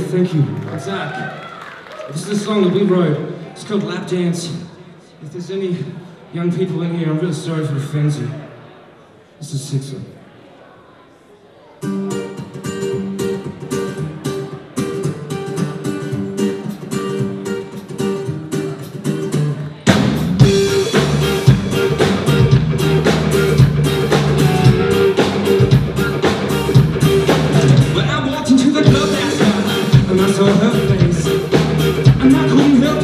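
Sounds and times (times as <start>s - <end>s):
strummed guitars: 11.8s - 33.0s
bass guitar: 12.0s - 33.0s
drum kit: 15.9s - 33.0s.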